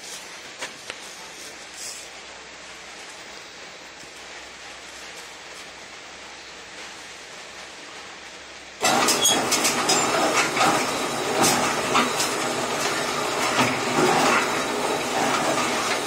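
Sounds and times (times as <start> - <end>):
faint steady hiss: 0.0 - 8.8.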